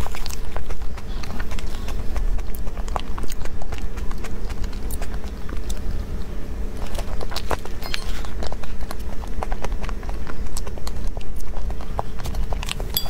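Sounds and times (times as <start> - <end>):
cream cake being chewed: 0.0 - 13.0.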